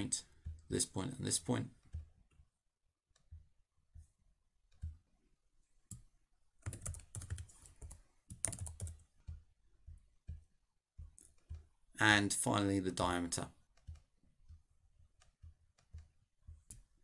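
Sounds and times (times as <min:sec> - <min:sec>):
computer keyboard typing: 0:00.0 - 0:04.1, 0:05.8 - 0:11.8, 0:13.3 - 0:17.0.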